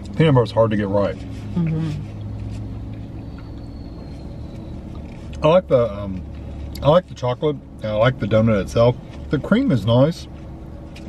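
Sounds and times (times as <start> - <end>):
low rumble in car cabin: 0.0 - 11.0.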